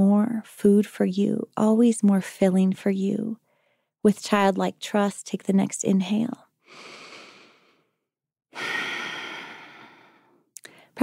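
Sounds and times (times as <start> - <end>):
person breathing: 3.4 - 3.9, 6.6 - 11.0.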